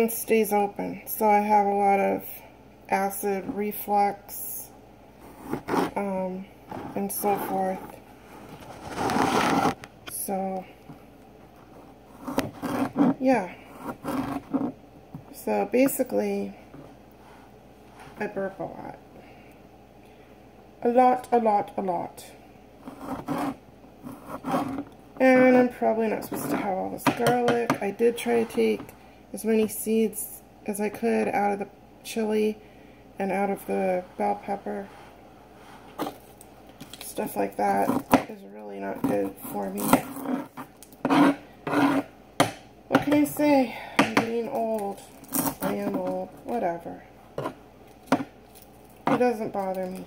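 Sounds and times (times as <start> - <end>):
knife cutting and scraping: 5.2 - 6.1, 12.1 - 14.8, 22.8 - 25.0, 39.0 - 42.1, 45.1 - 46.1.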